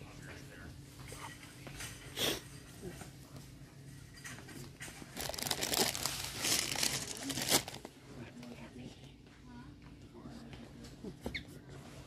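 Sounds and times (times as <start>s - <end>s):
crinkling and rustling: 4.0s - 8.5s.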